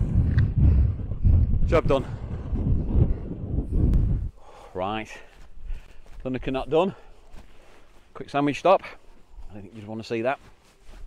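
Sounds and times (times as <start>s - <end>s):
wind buffeting microphone: 0.0s - 4.6s.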